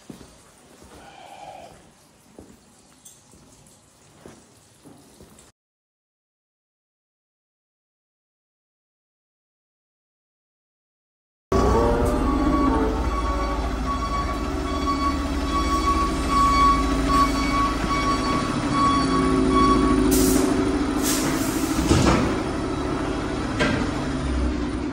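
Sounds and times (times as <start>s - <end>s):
diesel truck engine running: 11.5s - 24.9s
high reversing beeps: 11.6s - 20.8s
air hisses: 20.1s - 21.9s.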